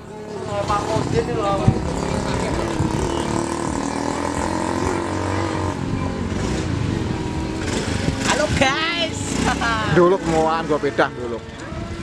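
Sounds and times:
vehicle engine running: 0.0s - 11.5s
people's voices: 0.0s - 12.0s.

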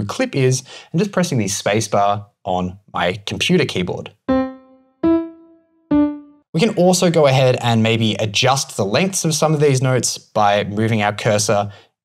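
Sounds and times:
single piano notes: 4.3s - 6.4s.

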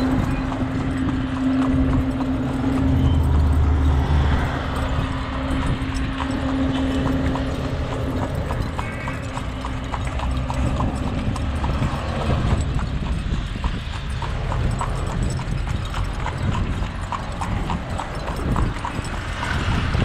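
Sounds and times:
continuous low rumble: 0.0s - 20.0s
horse hooves clip-clopping on asphalt: 0.0s - 20.0s.

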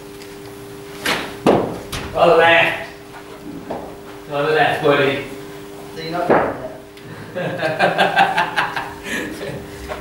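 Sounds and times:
bat striking ball: 1.0s - 2.0s.

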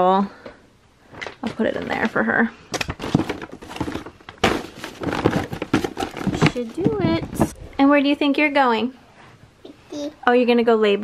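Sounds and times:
bags knocking against plastic: 2.9s - 7.6s
paper bags rustling: 2.9s - 7.6s.

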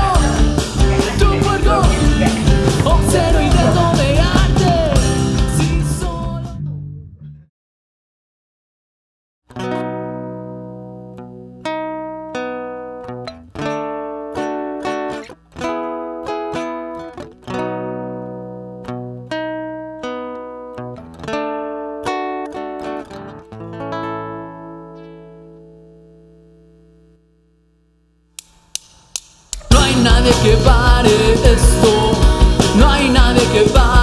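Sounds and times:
acoustic guitars strumming chords: 0.0s - 6.8s, 9.5s - 27.0s, 29.5s - 34.0s.

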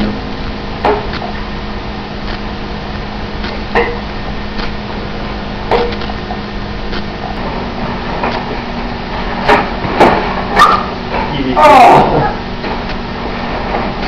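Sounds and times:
low hum: 0.0s - 14.0s.

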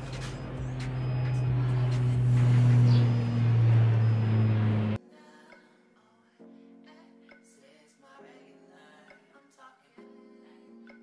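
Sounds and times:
faint guitar music: 0.0s - 5.0s
low mechanical hum: 0.0s - 5.0s.

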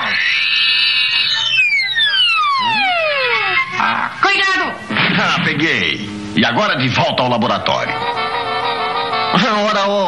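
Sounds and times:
cartoon falling whistle glide: 0.1s - 3.8s
high held tone: 1.0s - 5.0s.

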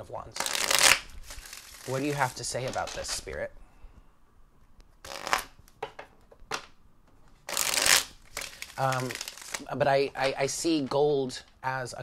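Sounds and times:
cards being shuffled: 0.3s - 3.4s, 5.0s - 5.8s, 7.4s - 11.0s.

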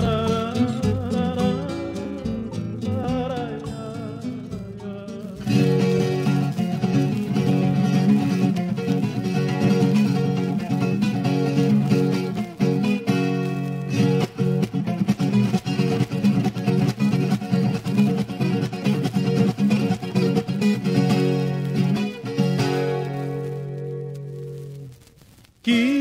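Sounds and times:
guitar strummed and plucked: 0.0s - 26.0s.

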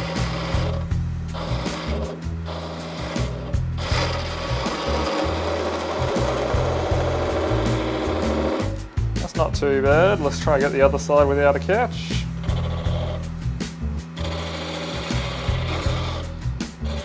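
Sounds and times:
lathe tool cutting wood: 0.0s - 17.0s.

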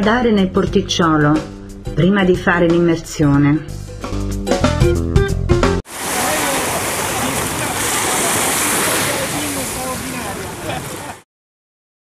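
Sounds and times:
sea water sloshing: 5.9s - 11.2s
small waves breaking: 5.9s - 11.2s
faint voices: 6.1s - 11.2s.

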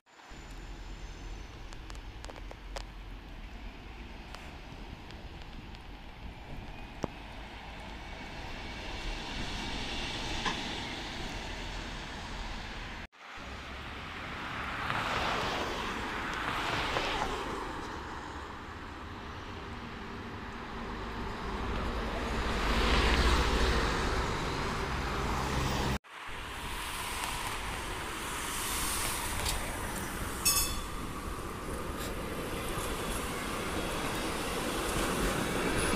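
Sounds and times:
tram on tracks: 0.1s - 35.9s
vehicles passing close by: 1.8s - 35.9s.

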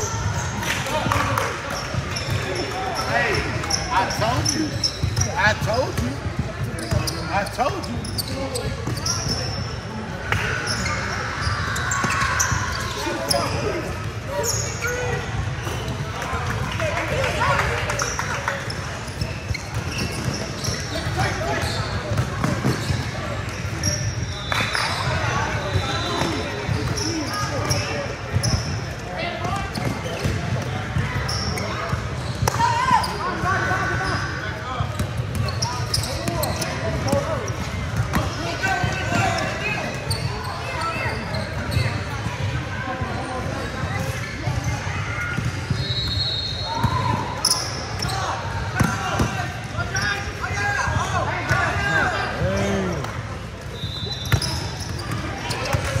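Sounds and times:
sneaker squeaks: 0.0s - 16.3s, 17.2s - 56.0s.

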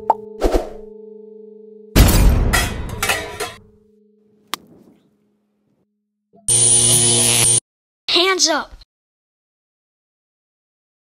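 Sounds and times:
crash: 2.0s - 3.6s
harsh steady buzz: 6.5s - 7.6s.

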